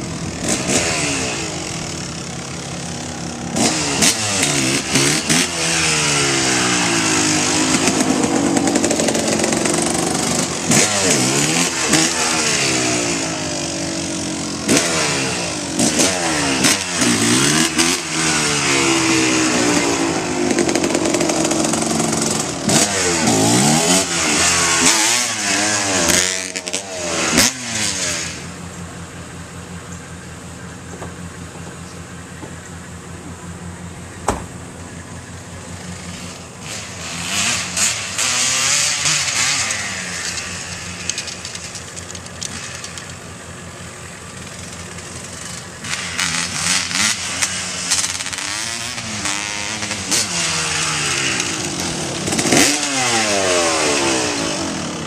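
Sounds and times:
dirt bike engine revving: 0.0s - 55.0s
sharp click: 41.1s - 43.2s.

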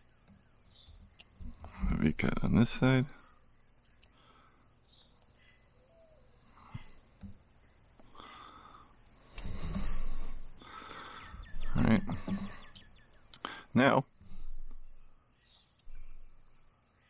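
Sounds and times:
faint clicks: 0.0s - 1.8s, 3.5s - 4.4s
birds chirping: 0.0s - 17.0s.

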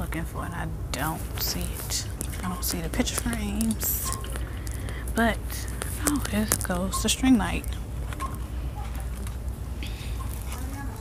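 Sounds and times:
faint scattered clicks: 1.4s - 9.4s.

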